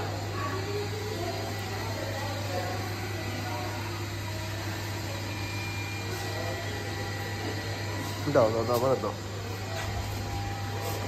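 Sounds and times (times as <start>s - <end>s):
faint voices: 0.0s - 11.0s
low mechanical hum: 0.0s - 11.0s.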